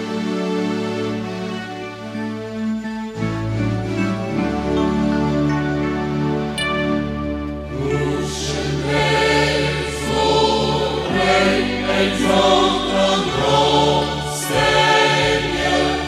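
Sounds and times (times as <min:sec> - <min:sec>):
sustained instrumental accompaniment: 0:00.0 - 0:16.0
choir singing a religious song: 0:07.6 - 0:16.0.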